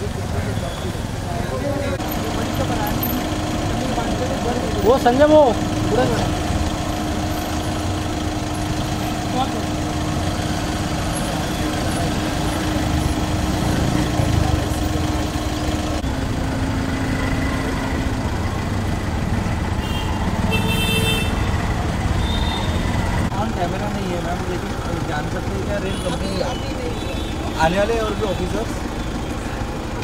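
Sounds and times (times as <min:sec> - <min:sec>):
crowd talking: 0:00.0 - 0:19.0, 0:21.7 - 0:30.0
car engine idling: 0:00.0 - 0:30.0.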